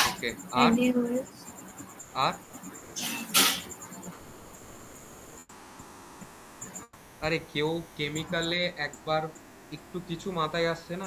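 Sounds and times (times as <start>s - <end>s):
person speaking a syllable: 0.6s - 1.3s.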